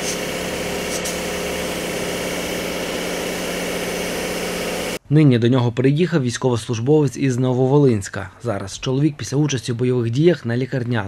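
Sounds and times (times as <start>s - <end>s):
motor humming: 0.0s - 5.0s
spray gun hissing air: 0.0s - 5.0s.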